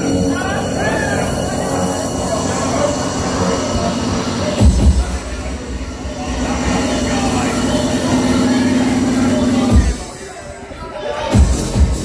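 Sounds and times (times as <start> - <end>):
deep bass: 0.0 - 10.2, 11.3 - 12.0
electronic dance music: 0.0 - 12.0.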